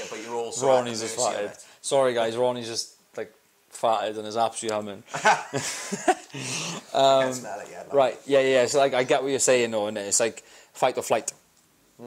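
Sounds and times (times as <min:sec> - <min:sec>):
men laughing: 0:05.1 - 0:06.9.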